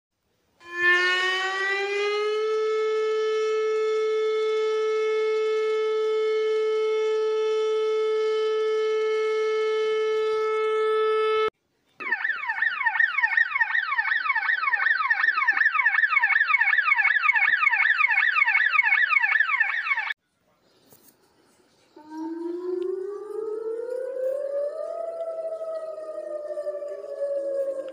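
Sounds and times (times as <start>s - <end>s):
siren quick rising sweeps: 0.6s - 20.1s, 22.0s - 27.9s
emergency siren steady high tone: 0.6s - 20.2s, 22.0s - 27.9s.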